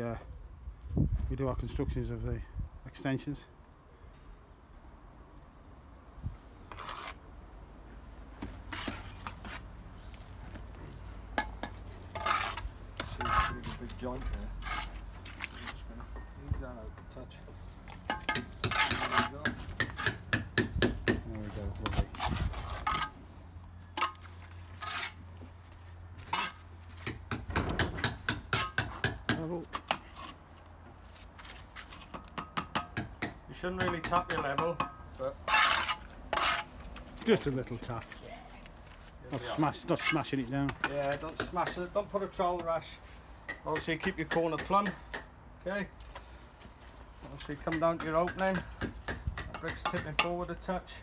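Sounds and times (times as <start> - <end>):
trowel scraping brick and mortar: 6.7 - 7.3, 8.6 - 9.7, 11.4 - 15.8, 17.9 - 20.5, 21.5 - 23.2, 24.0 - 25.5, 26.2 - 27.2, 35.4 - 36.8, 39.4 - 41.9.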